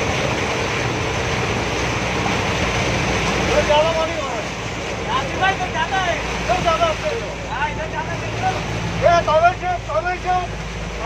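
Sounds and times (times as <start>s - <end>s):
bus engine humming: 0.0s - 11.0s
floodwater splashing: 0.0s - 11.0s.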